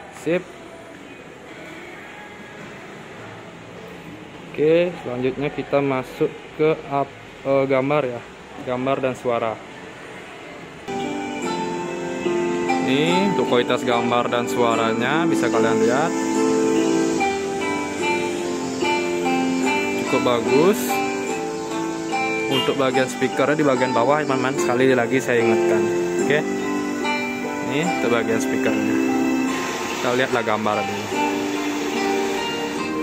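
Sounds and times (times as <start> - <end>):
plucked-string instrumental music: 10.9 - 33.0.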